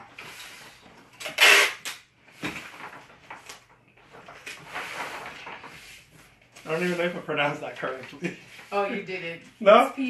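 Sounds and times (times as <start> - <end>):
paper rustling and crinkling: 2.2 - 9.7.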